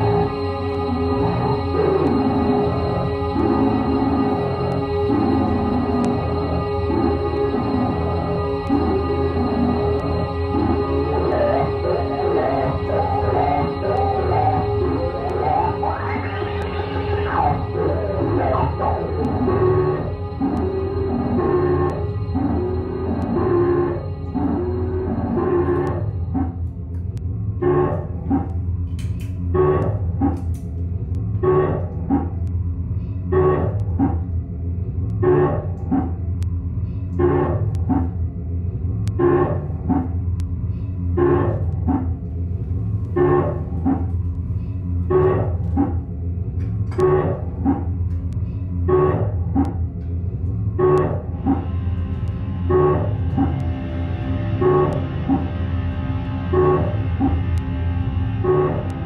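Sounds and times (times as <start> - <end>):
dense fuller music layer: 0.0 - 26.7
repeating processed sound loop: 0.0 - 26.7, 27.3 - 28.7, 29.4 - 34.4, 35.0 - 36.4, 37.1 - 49.9, 50.5 - 59.0
low electric bass drone: 0.0 - 59.0.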